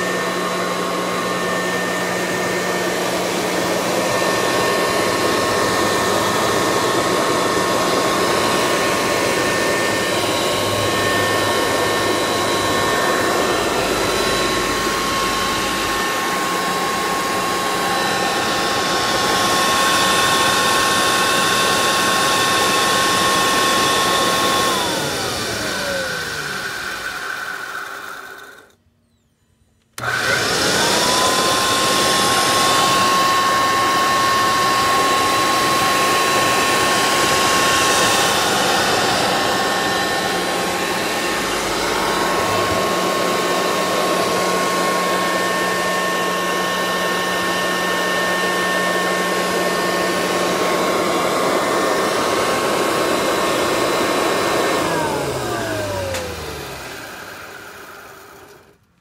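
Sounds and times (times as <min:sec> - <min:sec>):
vacuum cleaner motor whine: 0:00.0 - 0:59.0.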